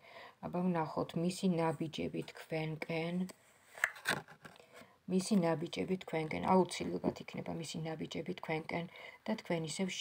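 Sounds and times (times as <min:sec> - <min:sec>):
woman speaking: 0:00.4 - 0:03.3, 0:05.1 - 0:10.0.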